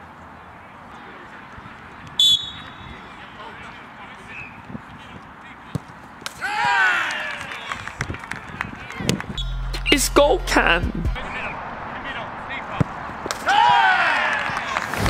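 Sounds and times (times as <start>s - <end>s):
open-air noise: 0.0s - 15.0s
referee's whistle blast: 2.2s - 2.9s, 9.4s - 10.2s.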